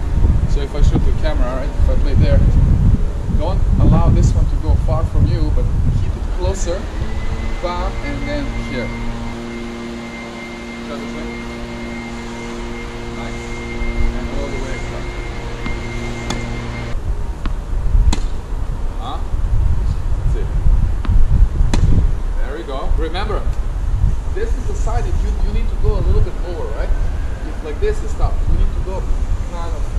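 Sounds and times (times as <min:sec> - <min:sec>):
low rumbling noise: 0:00.0 - 0:29.9
steady mechanical hum: 0:00.0 - 0:29.9.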